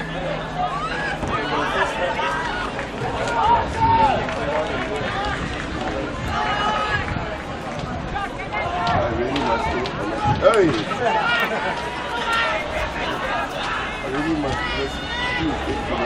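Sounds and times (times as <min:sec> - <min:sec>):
crowd chatter: 0:00.0 - 0:16.0
people talking: 0:00.0 - 0:16.0.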